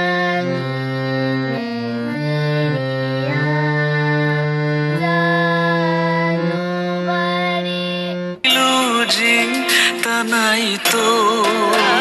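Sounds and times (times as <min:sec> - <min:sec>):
harmonium: 0:00.0 - 0:12.0
girl singing: 0:04.9 - 0:12.0.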